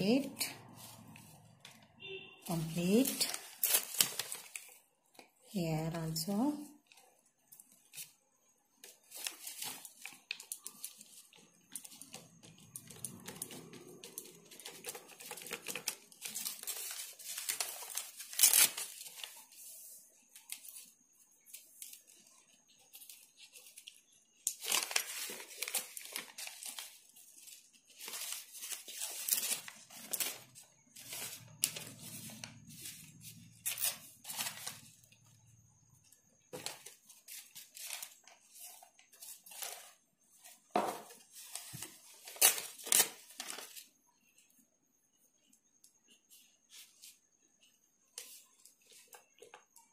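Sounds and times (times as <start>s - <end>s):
paper crinkling and rustling: 0.0s - 5.5s, 6.2s - 44.6s, 45.4s - 49.9s.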